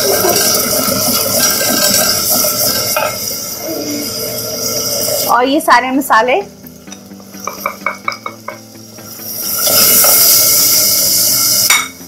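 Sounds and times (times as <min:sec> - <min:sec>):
stock boiling in hot oil: 0:00.0 - 0:05.8, 0:09.3 - 0:12.0.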